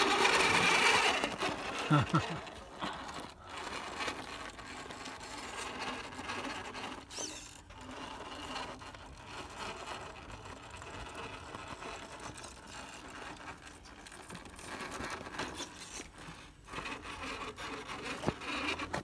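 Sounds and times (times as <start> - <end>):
toy car electric motor whirring: 0.0 - 19.0.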